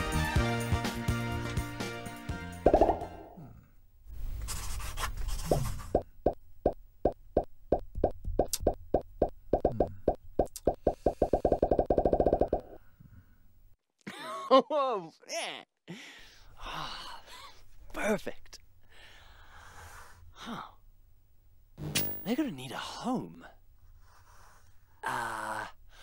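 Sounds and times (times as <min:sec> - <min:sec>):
cartoon popping plops: 0:02.6 - 0:03.3, 0:06.0 - 0:12.8.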